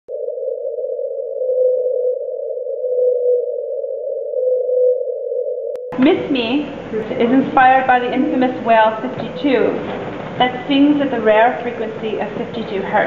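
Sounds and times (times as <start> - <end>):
steady humming tone: 5.9 - 13.0.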